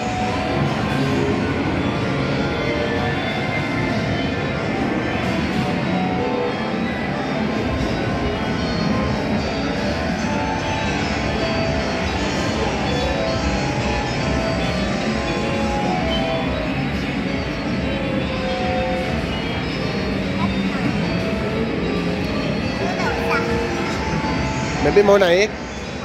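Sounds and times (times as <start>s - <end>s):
kiddie ride tunes: 0.0s - 26.0s.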